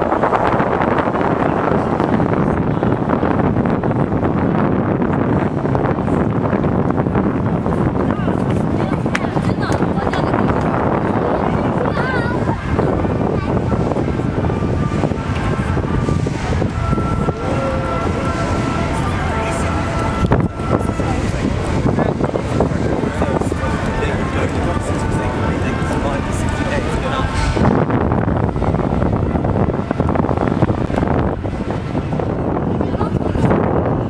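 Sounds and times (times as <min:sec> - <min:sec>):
city rumble: 0:00.0 - 0:34.0
wind buffeting microphone: 0:00.0 - 0:34.0.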